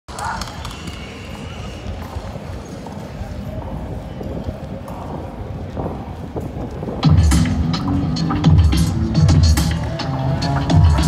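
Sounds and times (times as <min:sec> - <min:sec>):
distant crowd chatter: 0:00.1 - 0:11.0
loud music with heavy bass: 0:07.0 - 0:11.0.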